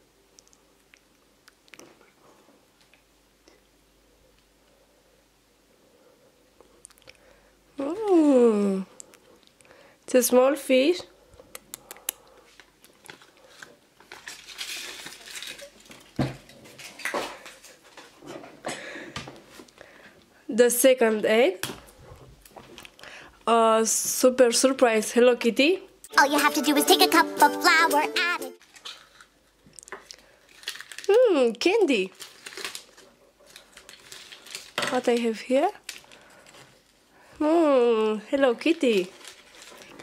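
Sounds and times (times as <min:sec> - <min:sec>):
paper crinkling: 0:12.6 - 0:18.1, 0:30.1 - 0:31.2, 0:31.9 - 0:37.0, 0:38.8 - 0:40.0.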